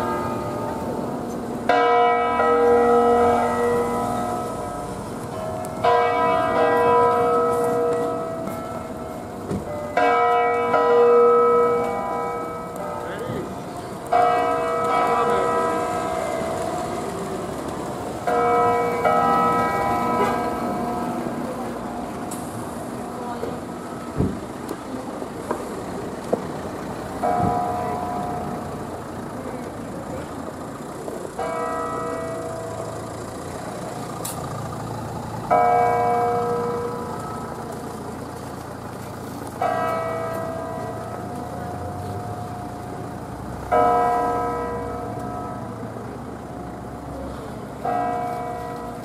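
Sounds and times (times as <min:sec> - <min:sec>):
church bells ringing: 0:00.0 - 0:24.2, 0:27.1 - 0:49.0.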